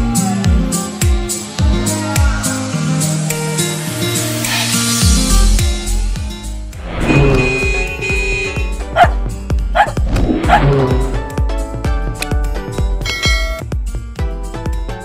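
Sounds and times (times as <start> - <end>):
upbeat music with steady beat: 0.0 - 6.8
dog barking: 8.9 - 9.2, 9.8 - 10.7.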